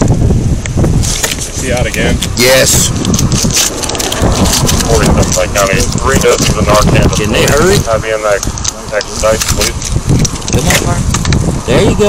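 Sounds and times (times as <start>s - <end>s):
microphone handling clicks and rustling: 0.0s - 11.8s
steady low rumble: 0.0s - 12.0s.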